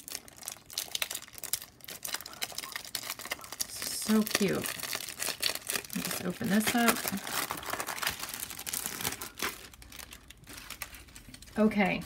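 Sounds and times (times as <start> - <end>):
plastic sleeve crinkling: 0.0 - 12.0.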